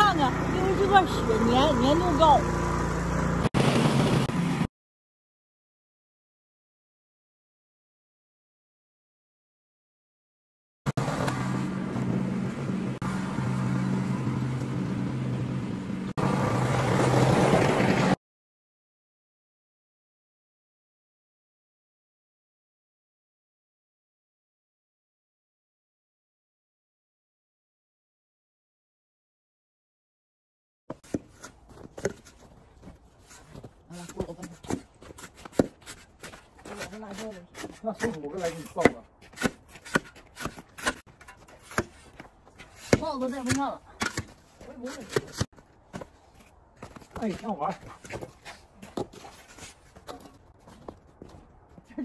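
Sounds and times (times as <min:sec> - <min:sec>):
snowblower engine running: 0:00.0 - 0:04.7, 0:11.0 - 0:18.2
snow shovel scraping: 0:31.0 - 0:45.5, 0:47.2 - 0:50.3.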